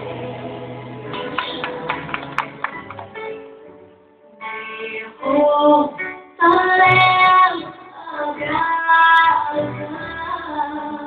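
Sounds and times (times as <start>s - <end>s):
instrumental backing: 0.0s - 11.0s.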